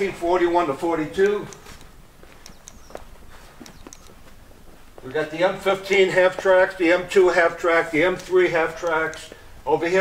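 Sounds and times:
faint footsteps on carpet: 1.5s - 7.1s.

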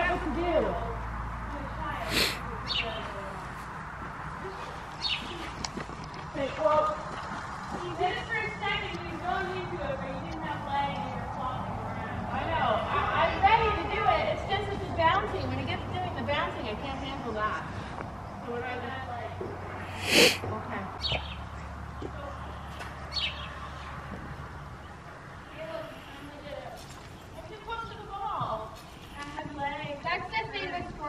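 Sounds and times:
short sharp noises: 19.8s - 20.5s.

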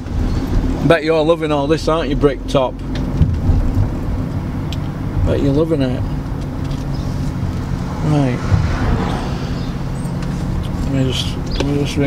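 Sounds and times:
car cabin road and engine noise: 0.0s - 12.0s.

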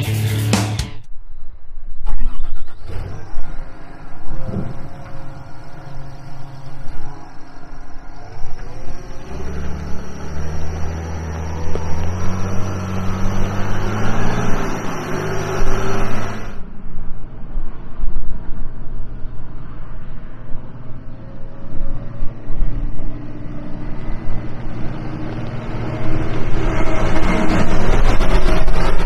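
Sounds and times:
diesel engine revving: 2.1s - 16.6s, 22.3s - 29.0s.

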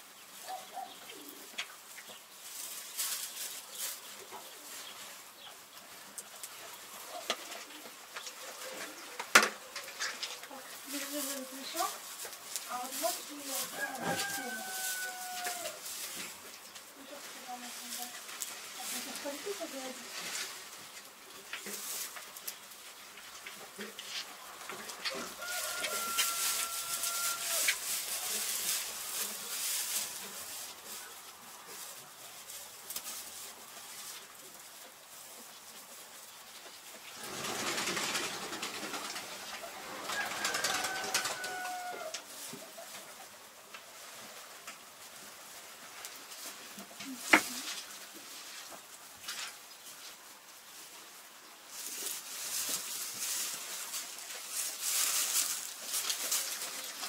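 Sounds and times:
sheep rustling hay: 0.0s - 57.0s
high-pitched animal call: 25.8s - 27.8s.

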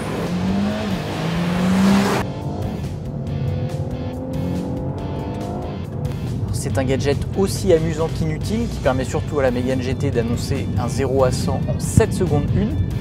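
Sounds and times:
car engine accelerating hard: 0.0s - 13.0s.

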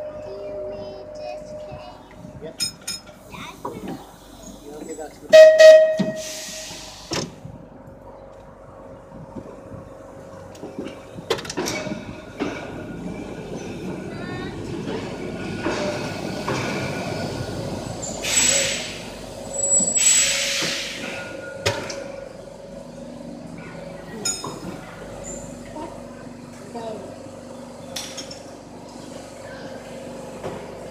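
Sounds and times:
tram rumbling on rails: 0.0s - 30.9s
hiss bursts: 6.2s - 7.2s, 19.9s - 21.2s.

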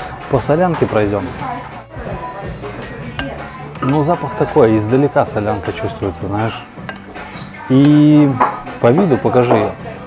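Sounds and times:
metal spoon clinking ceramic bowl: 2.8s - 8.6s.

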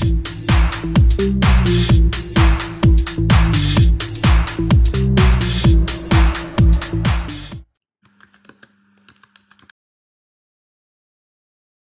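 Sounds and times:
computer keyboard typing: 8.1s - 9.7s.

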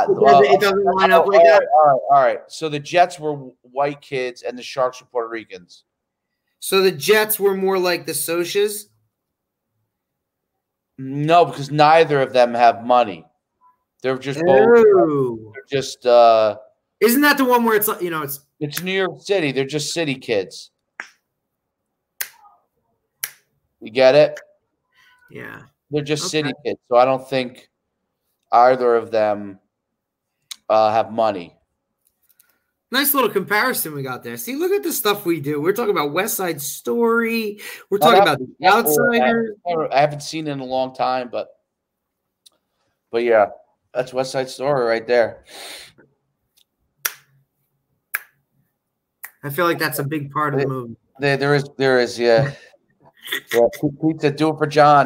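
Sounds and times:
finger snaps: 22.2s - 22.5s, 23.2s - 23.4s, 47.0s - 47.3s, 48.2s - 48.4s
finger snapping: 47.0s - 47.3s.

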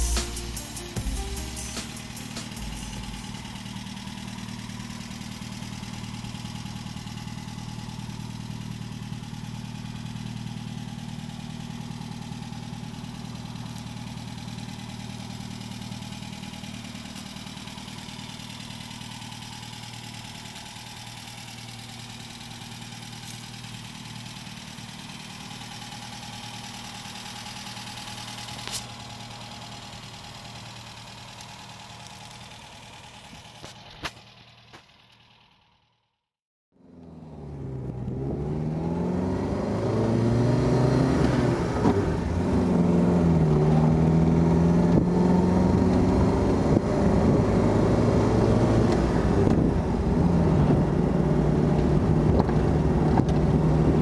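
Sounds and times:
car engine idling: 0.0s - 36.2s.

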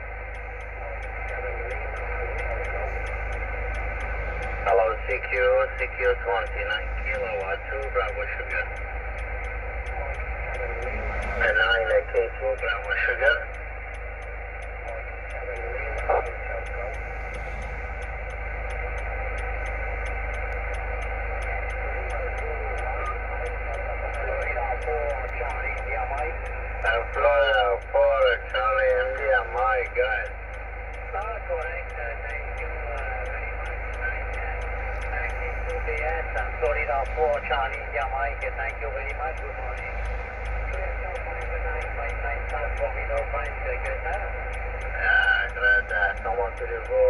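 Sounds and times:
faint ticking: 0.0s - 47.0s
radio static: 0.0s - 47.0s
garbled voice over radio: 0.5s - 8.8s, 9.9s - 13.5s, 14.8s - 17.8s, 21.5s - 30.4s, 31.0s - 47.0s.

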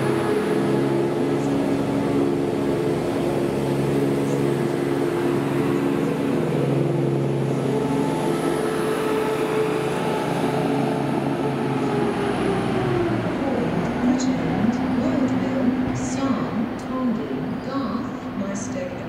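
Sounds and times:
diesel train engines running: 0.0s - 19.0s.

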